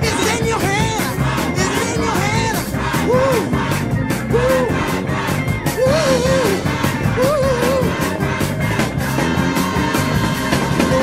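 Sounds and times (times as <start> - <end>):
band playing fast beat: 0.0 - 11.0
crowd noise: 0.0 - 11.0
person singing: 4.3 - 5.0, 5.7 - 8.2.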